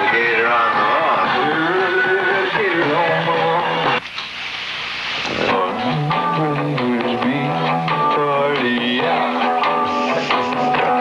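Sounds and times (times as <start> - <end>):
indistinct voices talking: 0.0 - 4.0
rock band music: 0.0 - 4.0, 5.3 - 11.0.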